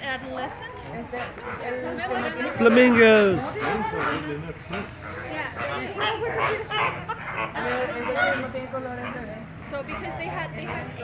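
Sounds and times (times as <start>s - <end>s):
flamingos honking: 0.3s - 11.0s.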